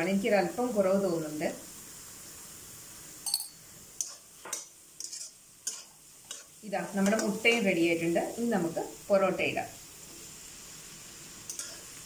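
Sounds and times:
food frying: 0:00.0 - 0:12.0
metal spatula scraping pan: 0:04.0 - 0:07.8.

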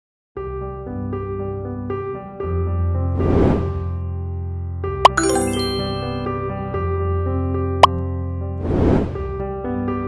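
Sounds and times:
bright chiming ding: 0:05.1 - 0:06.3.

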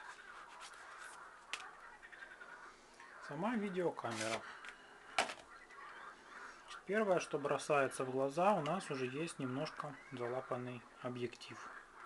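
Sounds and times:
plastic camcorder handling sound: 0:04.1 - 0:05.5.

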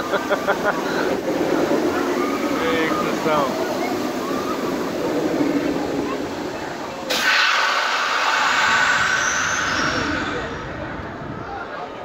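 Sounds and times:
amusement ride rushing hiss: 0:00.0 - 0:12.0.

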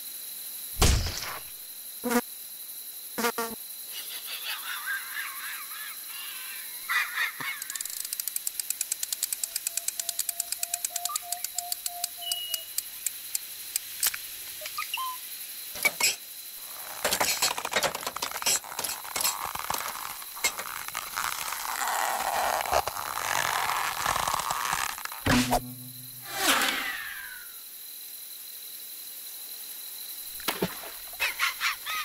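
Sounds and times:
nature ambience: 0:00.0 - 0:32.0
cartoon thump: 0:00.8 - 0:01.5, 0:25.2 - 0:27.0
chirpy twittering: 0:09.6 - 0:12.8, 0:14.6 - 0:15.2
held tone: 0:25.3 - 0:26.3.

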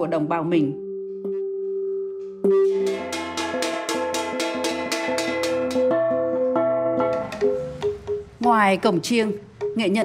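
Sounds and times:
bronze gongs struck: 0:02.4 - 0:06.4.

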